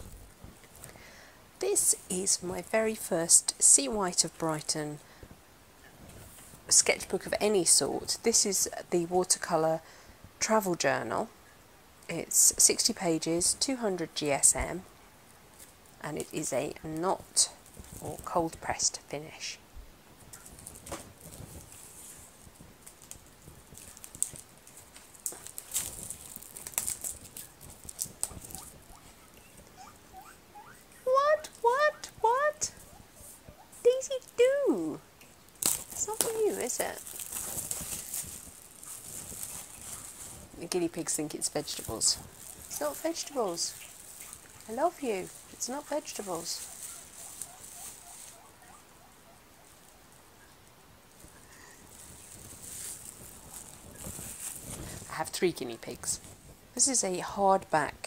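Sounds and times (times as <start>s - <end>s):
plastic wrapping crinkling: 20.2s - 30.1s, 34.1s - 50.0s, 51.1s - 56.5s
guinea pigs squeaking: 27.3s - 34.1s, 39.5s - 50.6s
guinea pigs squealing: 28.3s - 31.2s, 45.8s - 49.8s.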